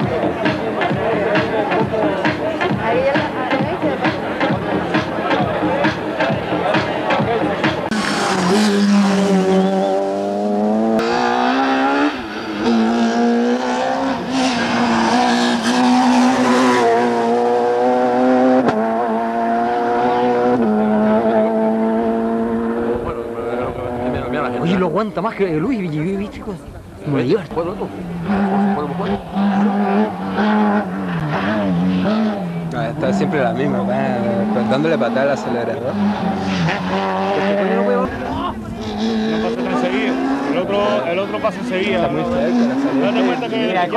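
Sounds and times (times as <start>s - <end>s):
rally car engine at high revs: 5.9s - 24.8s, 27.8s - 43.9s.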